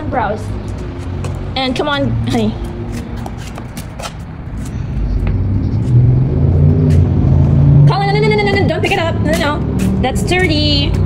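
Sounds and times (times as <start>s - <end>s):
car engine driving by: 2.2s - 11.0s.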